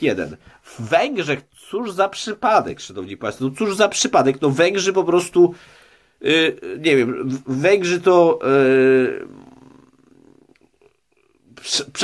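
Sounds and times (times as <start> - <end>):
man's drawn-out hesitation vowel: 8.4 - 9.6.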